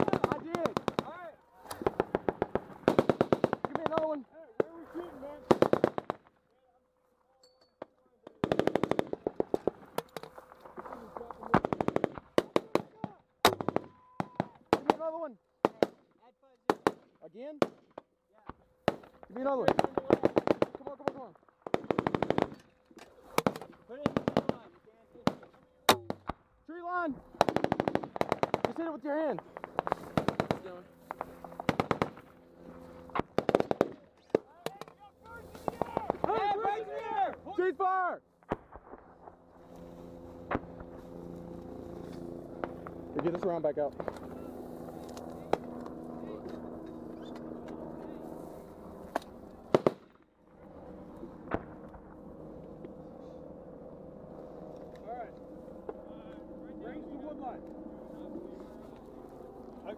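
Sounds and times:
automatic gunfire: 0:00.0 - 0:01.1, 0:01.8 - 0:04.2, 0:05.5 - 0:06.2, 0:08.4 - 0:09.6, 0:21.7 - 0:22.5, 0:27.4 - 0:28.8, 0:29.6 - 0:30.7, 0:31.7 - 0:32.2, 0:33.3 - 0:34.0, 0:49.7 - 0:50.1.

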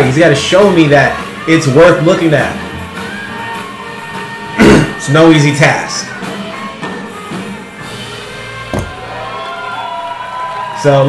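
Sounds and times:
swing band playing: 0:00.0 - 0:09.5
man clearing his throat: 0:04.6 - 0:05.0.

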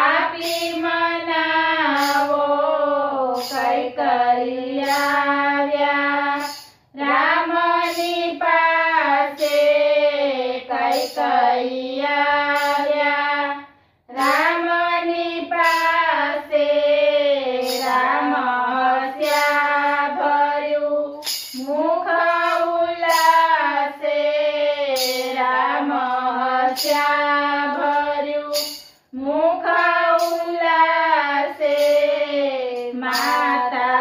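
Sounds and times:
women singing together: 0:00.0 - 0:34.0.

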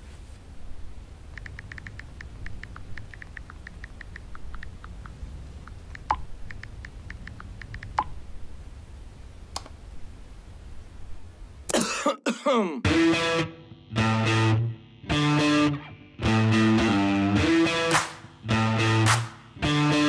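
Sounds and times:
low steady room hum: 0:00.0 - 0:12.8
touchscreen keyboard clicks: 0:01.3 - 0:08.1.

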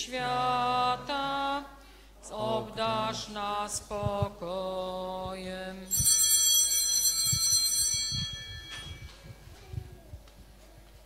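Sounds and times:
altar bells ringing: 0:05.9 - 0:09.6.

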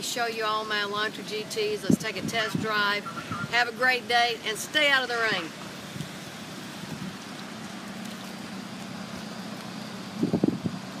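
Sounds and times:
light rain hiss: 0:00.4 - 0:11.0.

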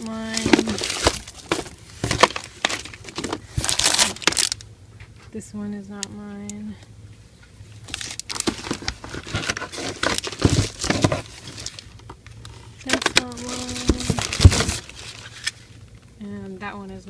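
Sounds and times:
plastic packaging crinkling: 0:00.0 - 0:04.7, 0:07.8 - 0:16.0.

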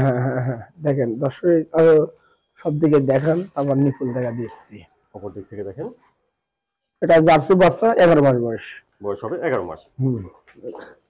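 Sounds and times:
man speaking: 0:00.0 - 0:06.0, 0:07.0 - 0:11.0.

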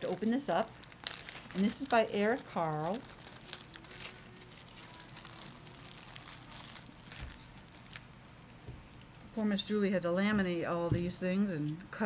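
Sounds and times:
laminated paper pages crinkling: 0:00.0 - 0:09.2.

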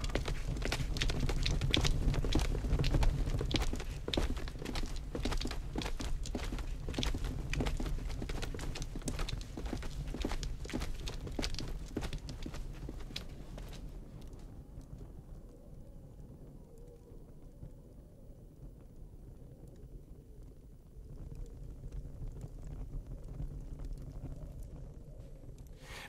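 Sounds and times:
soft footsteps: 0:00.0 - 0:14.0.

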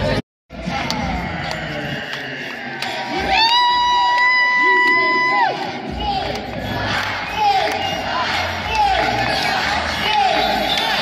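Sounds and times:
arena crowd cheering and shouting: 0:00.0 - 0:11.0.

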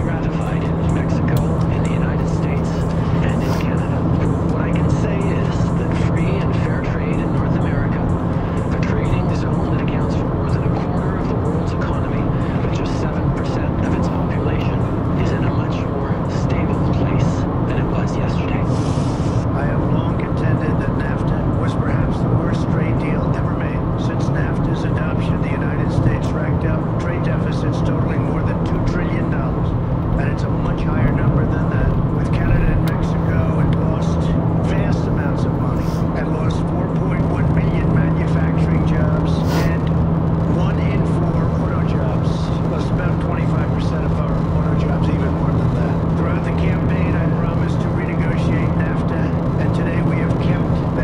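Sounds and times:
car engine and tyre drone: 0:00.0 - 0:51.0.

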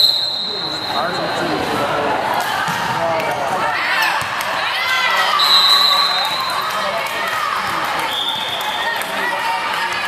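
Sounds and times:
voices calling out in a gym: 0:00.0 - 0:10.0.

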